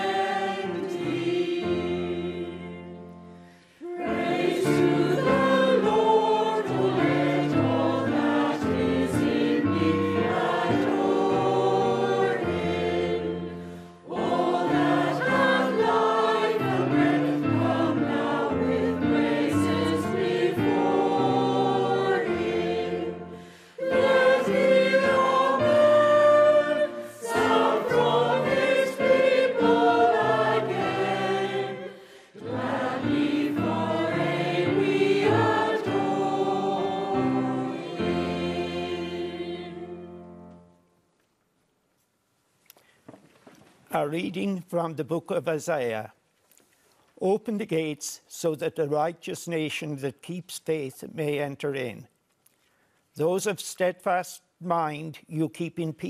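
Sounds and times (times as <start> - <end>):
choir singing a hymn: 0.0 - 40.7
piano accompaniment: 0.0 - 40.9.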